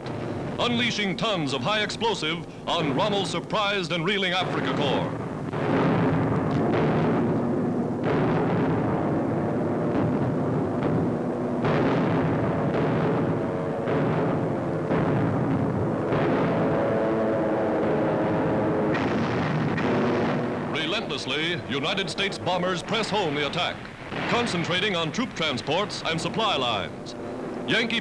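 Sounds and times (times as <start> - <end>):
bombs exploding: 0.0 - 28.0
steady drone: 4.7 - 28.0.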